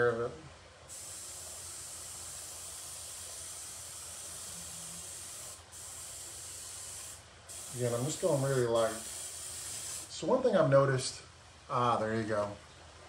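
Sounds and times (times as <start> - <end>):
airbrush spraying paint: 0.9 - 10.2.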